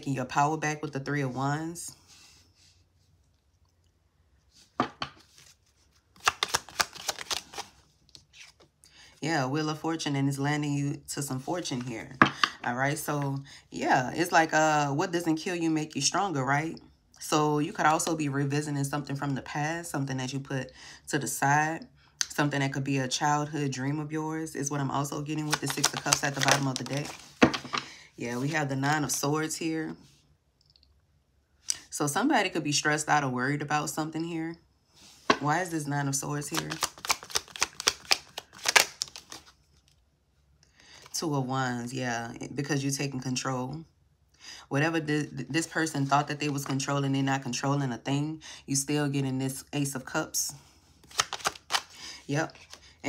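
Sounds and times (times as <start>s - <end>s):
woman speaking: 0.0s - 2.0s, 9.2s - 27.2s, 28.2s - 30.0s, 35.3s - 36.9s, 44.7s - 50.6s
cards clicking on tabletop: 6.2s - 7.6s
cards snapping and flicking: 6.2s - 7.7s, 36.6s - 39.4s, 51.0s - 52.0s.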